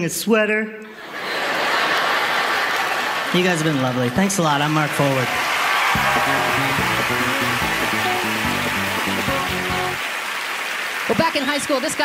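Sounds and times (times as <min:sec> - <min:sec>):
audience applause: 0:01.2 - 0:12.0
upbeat stage music: 0:03.3 - 0:12.0.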